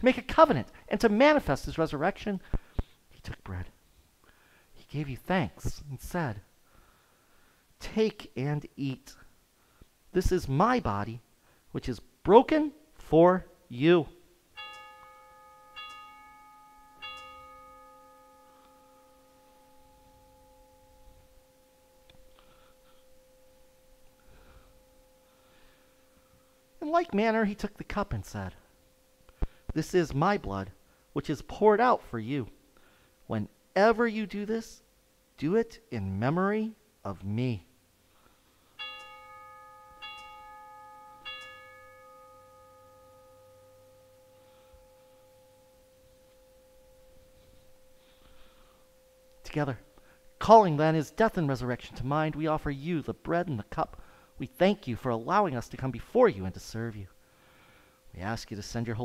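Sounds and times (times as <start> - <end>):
altar bell ringing: 14.5 - 31.2, 38.2 - 56.0.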